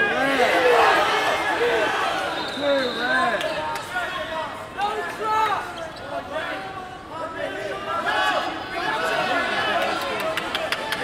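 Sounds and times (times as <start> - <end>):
coaches and spectators shouting: 0.0 - 11.0.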